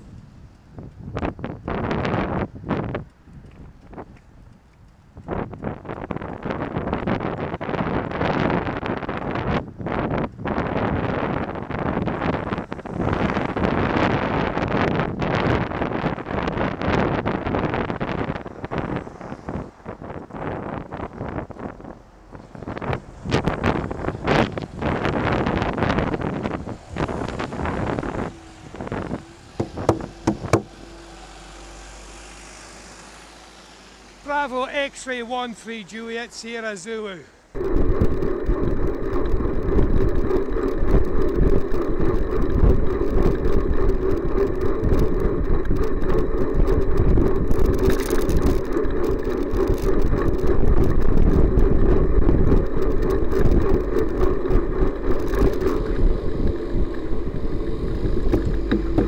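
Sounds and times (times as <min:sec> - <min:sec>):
wind buffeting microphone: 0:00.0 - 0:34.9, 0:37.5 - 0:59.0
road traffic: 0:00.0 - 0:59.0
bus passing close: 0:25.1 - 0:35.0
sharp knocks: 0:29.5 - 0:30.8, 0:58.3 - 0:59.0.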